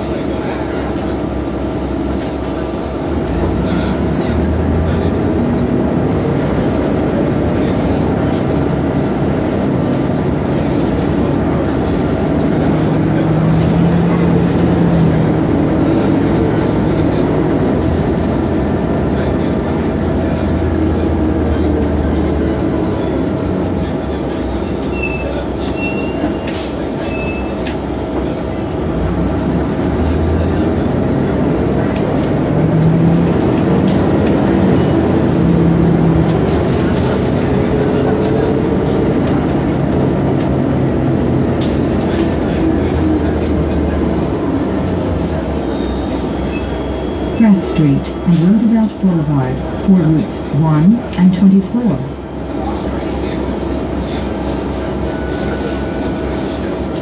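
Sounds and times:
bus engine running: 0.0s - 57.0s
high transmission whine: 0.0s - 57.0s
road noise: 0.0s - 57.0s.

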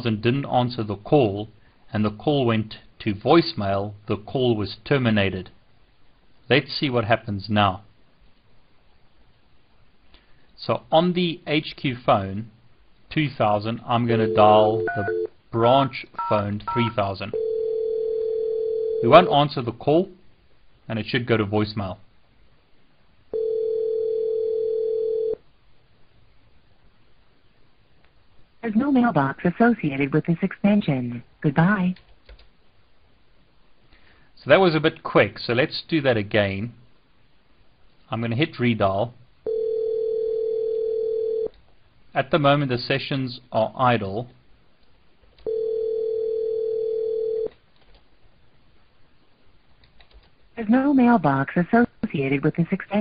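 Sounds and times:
telephone ringback tone: 14.2s - 15.3s, 16.2s - 19.3s, 23.3s - 25.4s, 39.5s - 41.5s, 45.5s - 47.5s.

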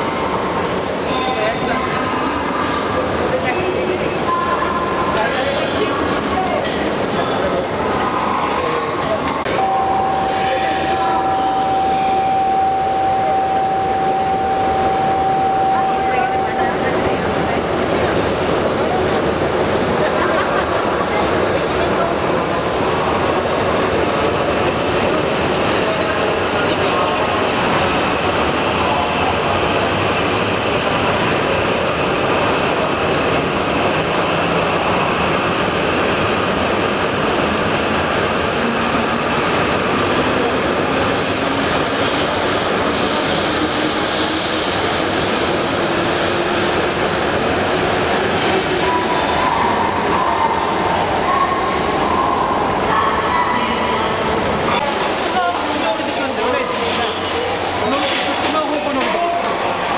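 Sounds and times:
rising train whine: 0.0s - 59.9s
train accelerating past: 5.8s - 59.9s.

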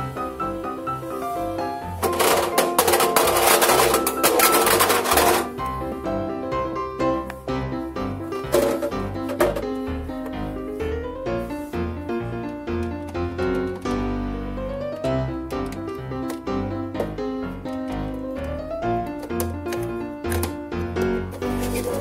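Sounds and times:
background piano music: 0.0s - 22.0s
plastic toy clattering in washer drum: 2.0s - 5.6s, 8.5s - 9.7s, 17.0s - 22.0s.

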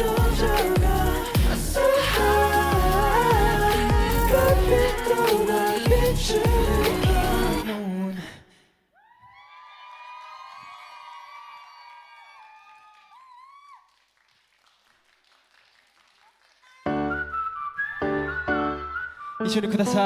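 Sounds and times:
music with heavy beat: 0.0s - 7.6s
pop song music: 0.0s - 8.5s, 16.9s - 20.0s
audience screaming: 9.1s - 13.8s.

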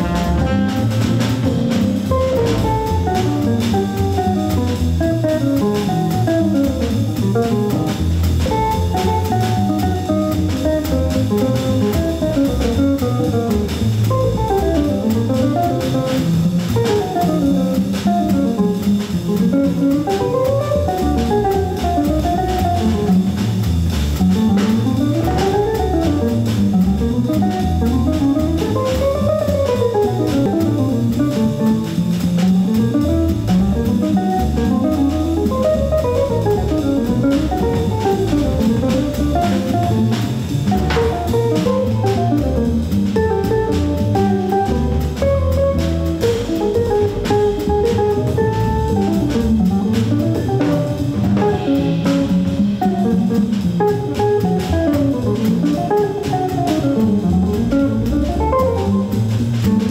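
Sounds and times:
drum kit played with sticks: 0.0s - 59.9s.

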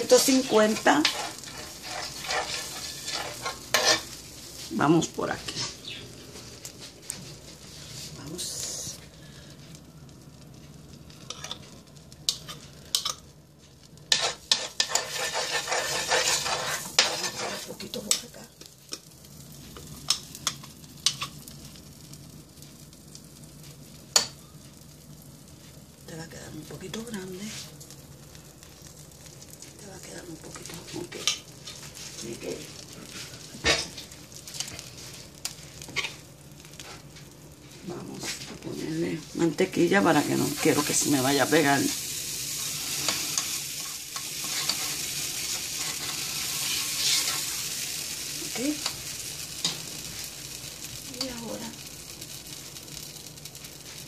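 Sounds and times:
batter sizzling on a griddle: 0.0s - 54.0s.

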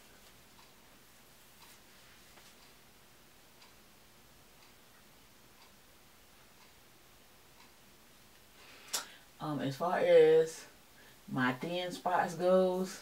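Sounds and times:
wall clock ticking: 0.0s - 13.0s.

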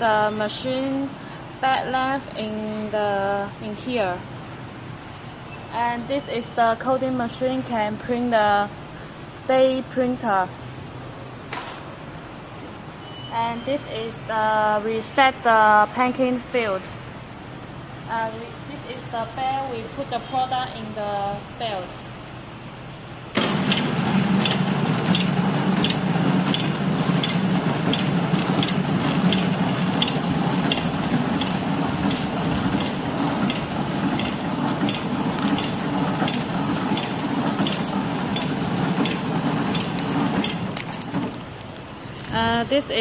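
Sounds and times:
packaging machine humming: 23.3s - 42.3s
machine clicking: 23.4s - 41.7s.

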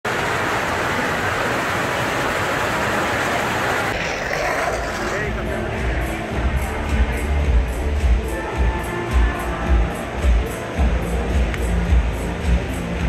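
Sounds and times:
fountain water splashing: 0.1s - 5.4s
crowd chatter: 0.1s - 13.0s.

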